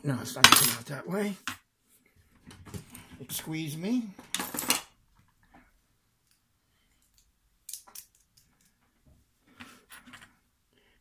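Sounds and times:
metal tools clattering: 0.4s - 0.8s, 4.3s - 4.8s.

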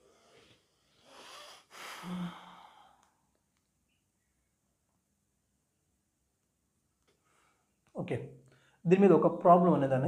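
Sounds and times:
man sighing: 1.7s - 3.0s.

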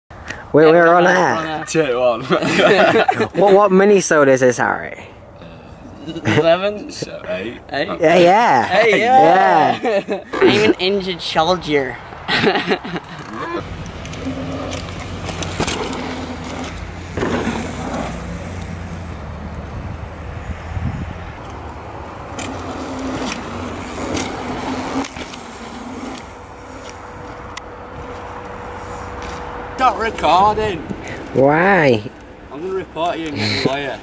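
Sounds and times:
bikes rattling: 5.6s - 34.0s
bike tyres rolling on dirt: 13.6s - 31.3s.

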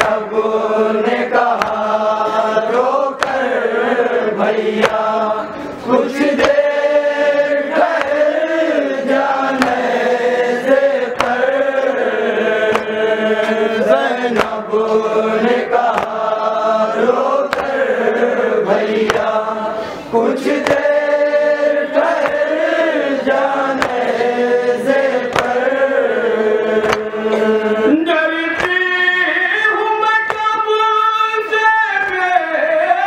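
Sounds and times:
men chanting a mourning lament: 0.0s - 33.0s
chest-beating slaps: 1.4s - 2.0s, 3.2s - 3.6s, 4.8s - 5.1s, 6.2s - 6.7s, 7.8s - 8.4s, 9.5s - 10.0s, 11.1s - 11.6s, 12.6s - 13.6s, 14.3s - 14.7s, 15.7s - 16.4s, 17.4s - 17.9s, 19.0s - 19.4s, 20.5s - 21.0s, 22.0s - 24.2s, 25.0s - 25.9s, 26.8s - 27.5s, 28.6s - 28.8s.

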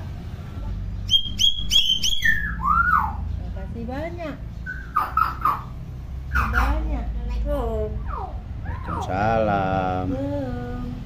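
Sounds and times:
bird whistling calls: 1.0s - 3.3s, 4.6s - 6.7s.

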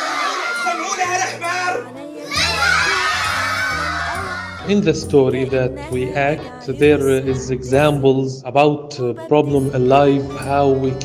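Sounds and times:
children calling and chattering: 0.0s - 4.7s
music playing: 0.0s - 11.0s.

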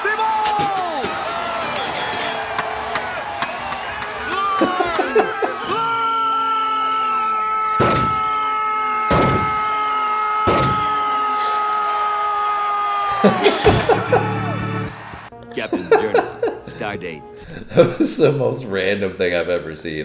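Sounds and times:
sharp thuds: 7.8s - 8.3s, 9.1s - 9.6s, 10.5s - 11.0s.

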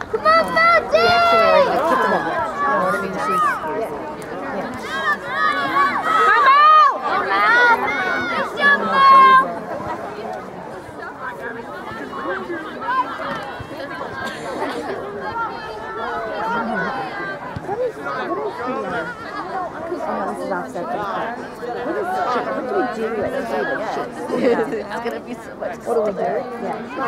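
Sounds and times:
overlapping conversation: 0.0s - 27.0s.

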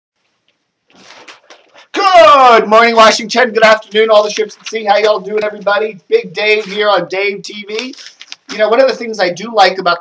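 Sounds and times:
man's loud voice: 1.8s - 10.0s
newspaper pages rustling: 4.1s - 5.8s, 7.7s - 8.7s.

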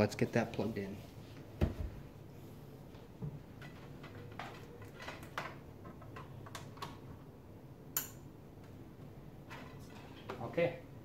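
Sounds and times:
cable clicking and rattling: 3.5s - 7.2s.

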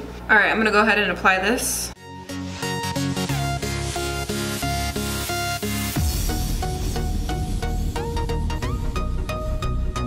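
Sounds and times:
electronic music with steady beat: 2.0s - 10.0s.

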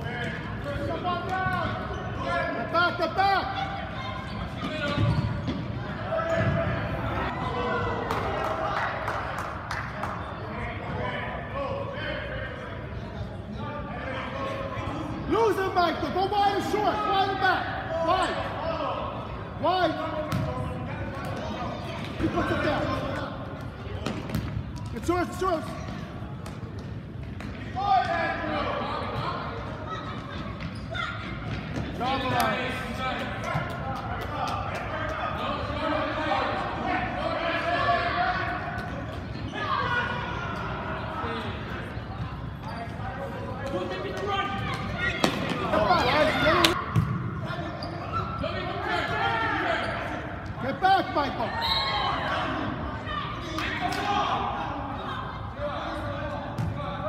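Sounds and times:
voices shouting in gymnasium: 0.0s - 57.0s.

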